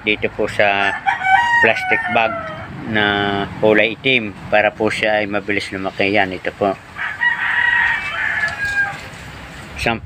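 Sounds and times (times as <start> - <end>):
rooster crowing: 0.8 - 2.8, 7.0 - 9.1.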